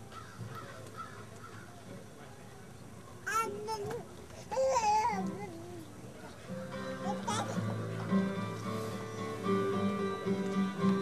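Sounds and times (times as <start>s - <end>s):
music with held notes: 6.4s - 11.0s.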